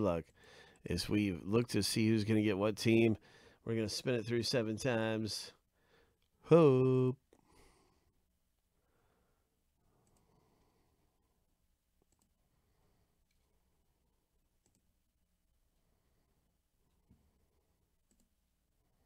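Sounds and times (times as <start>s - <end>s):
faint clicks: 10.0s - 10.3s, 12.0s - 12.4s, 14.6s - 14.9s, 18.0s - 18.4s.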